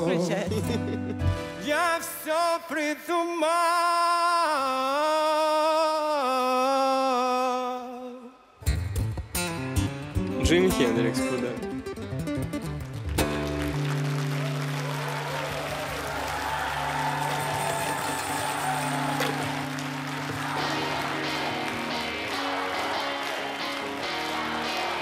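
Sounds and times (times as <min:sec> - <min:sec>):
sustained guitar notes: 0:08.6 - 0:14.2, 0:18.8 - 0:25.0
audience clapping: 0:12.4 - 0:25.0.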